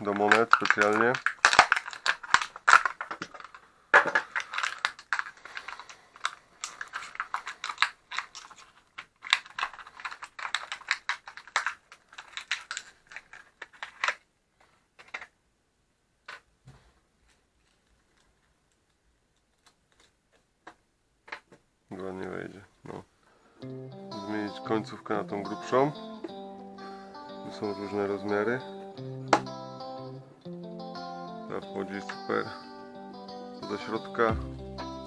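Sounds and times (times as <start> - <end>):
plastic packaging crackling: 0.0 - 15.4, 17.3 - 20.5.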